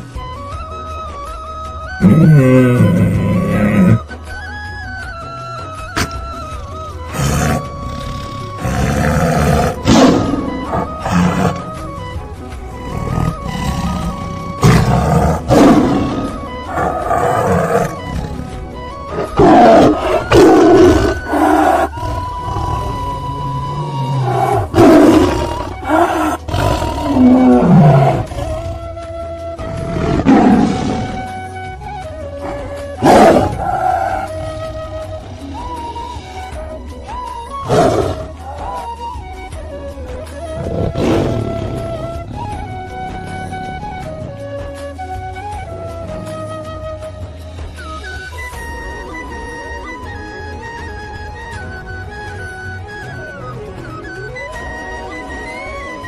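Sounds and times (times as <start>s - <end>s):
background music: 0.0s - 56.0s
tiger roaring and growling: 2.0s - 4.1s, 6.0s - 29.0s, 29.6s - 34.9s, 37.6s - 38.9s, 40.4s - 44.4s.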